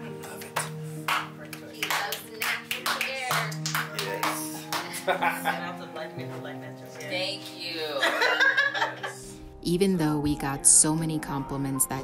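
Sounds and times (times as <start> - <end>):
background music: 0.0 - 12.0
women clapping: 0.2 - 5.3.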